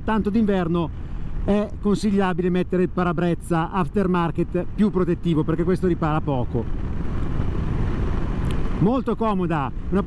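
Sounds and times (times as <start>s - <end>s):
man talking: 0.0s - 6.7s, 8.8s - 10.0s
wind rushing over microphone: 0.0s - 10.0s.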